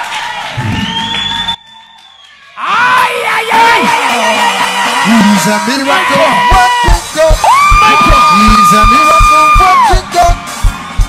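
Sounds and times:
crowd noise: 0.0 - 1.6, 2.6 - 11.0.

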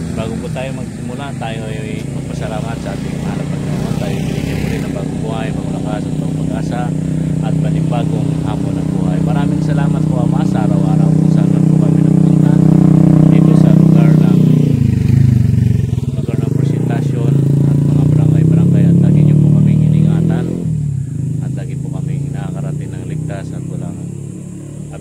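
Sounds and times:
motorcycle engine running: 0.0 - 25.0.

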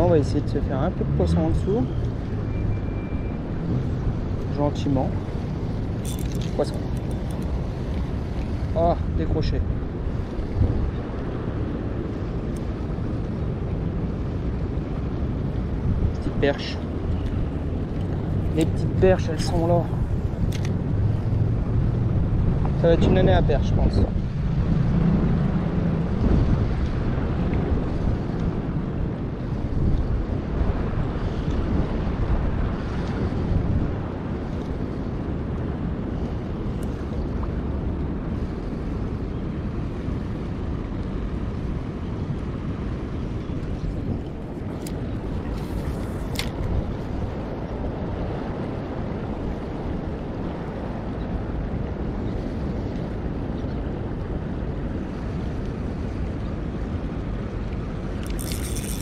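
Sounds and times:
river water: 0.0 - 59.0
wind buffeting microphone: 0.0 - 59.0.

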